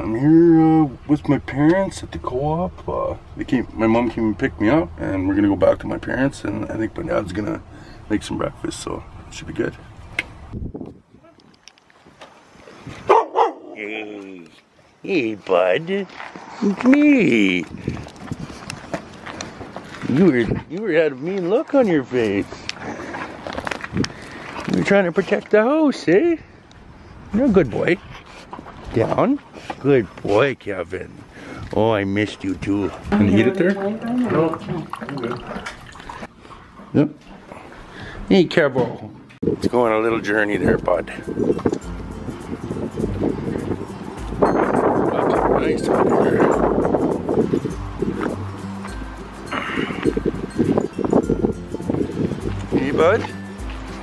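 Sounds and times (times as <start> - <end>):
footsteps on concrete: 16.0 - 20.4, 52.5 - 54.0.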